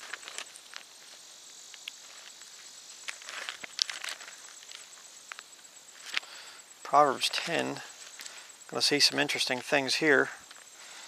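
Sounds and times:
pages rustling: 0.0 - 1.2, 2.0 - 4.9
insects chirping: 0.0 - 11.0.

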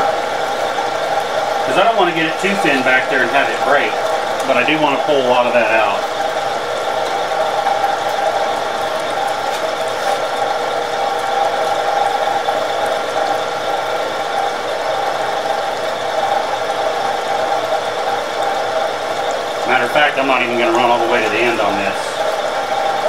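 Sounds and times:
coolant pouring and splashing: 0.0 - 23.0
milling machine cutting metal: 0.0 - 23.0.

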